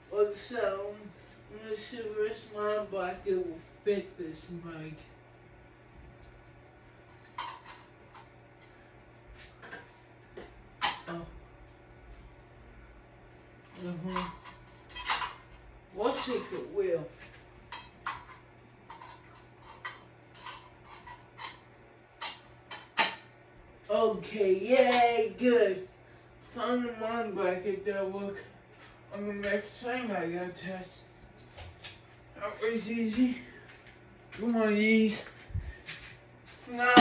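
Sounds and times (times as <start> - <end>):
ceiling fan motor hum: 0.0 - 37.0.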